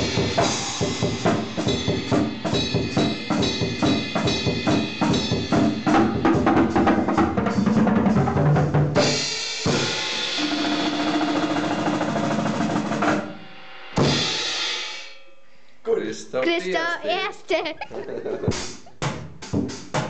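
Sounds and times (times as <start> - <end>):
cymbals ringing: 0.0 - 6.2, 9.2 - 12.1, 13.3 - 16.6
cymbal crash: 0.0 - 6.3, 9.0 - 12.2, 12.9 - 15.7
fast drum kit playing: 0.0 - 15.2, 18.4 - 20.0.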